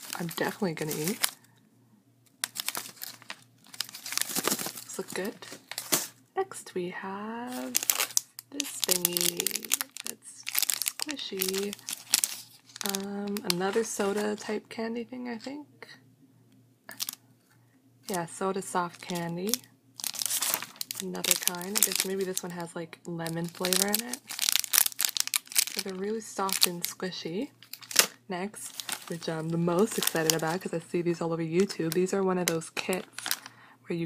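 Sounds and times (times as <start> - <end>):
plastic wrapper crinkling: 0.0 - 1.5, 2.3 - 6.2, 7.5 - 14.5, 16.9 - 17.2, 18.9 - 30.8, 31.6 - 33.6.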